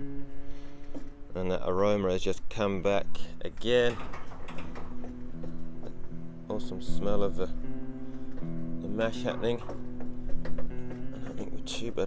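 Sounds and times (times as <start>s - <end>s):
light clicks and knocks: 3.4s - 12.0s.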